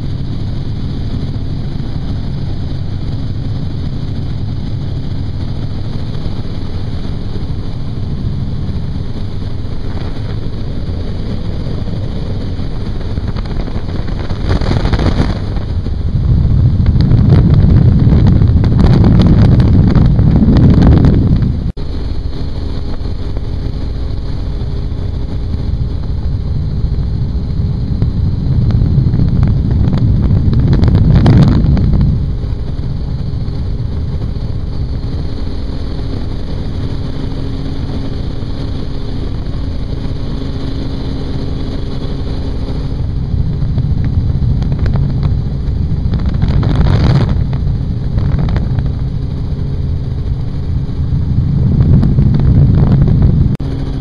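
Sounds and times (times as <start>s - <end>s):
helicopter rotor and engine drone: 0.0s - 54.0s
wind rushing on microphone: 0.0s - 54.0s.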